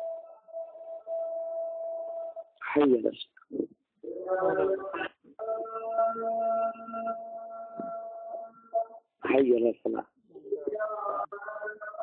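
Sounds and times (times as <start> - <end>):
man chanting call to prayer: 4.0 - 6.8.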